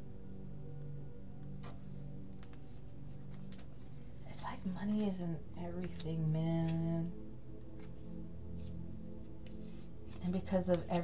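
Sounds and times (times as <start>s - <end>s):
soft background music: 0.0s - 11.0s
cards rustling and clicking: 2.4s - 6.8s, 7.6s - 11.0s
person speaking: 4.3s - 7.1s, 10.1s - 11.0s.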